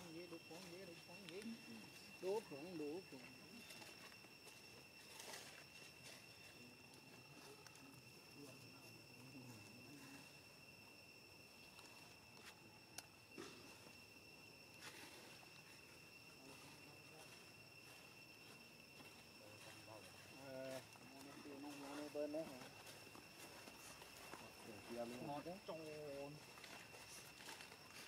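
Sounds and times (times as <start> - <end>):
faint insect drone: 0.0 - 28.0.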